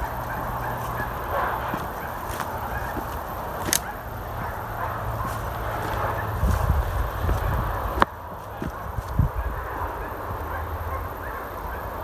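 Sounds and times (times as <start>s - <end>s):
wind rumbling on microphone: 0.0s - 10.1s
faint distant calls: 0.0s - 12.0s.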